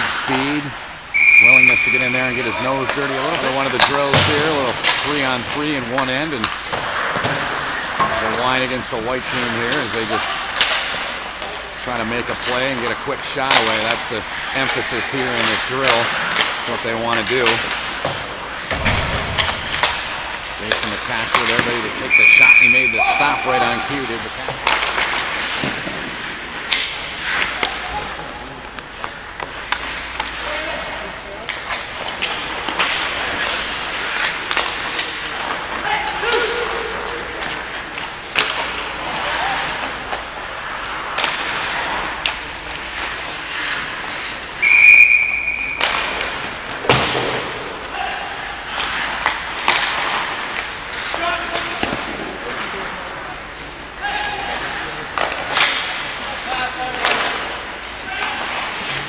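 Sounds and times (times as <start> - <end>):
players calling out: 0.1 - 17.8, 19.3 - 25.5, 27.2 - 43.9
short whistle blast: 1.1 - 2.4, 22.1 - 23.4, 44.6 - 45.9
hockey sticks and pucks knocking: 1.2 - 30.8, 31.4 - 59.0.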